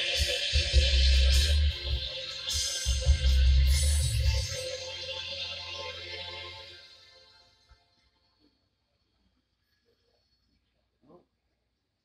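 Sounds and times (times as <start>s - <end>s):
instrumental music with deep bass: 0.0s - 7.6s.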